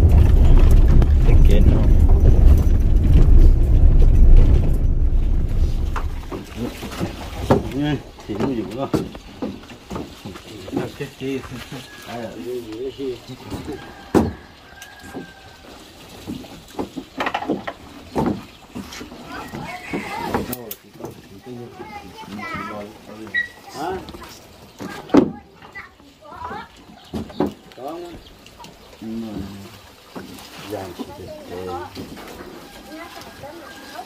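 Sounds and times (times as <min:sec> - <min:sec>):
people talking: 0:01.2 - 0:02.0, 0:06.3 - 0:06.9.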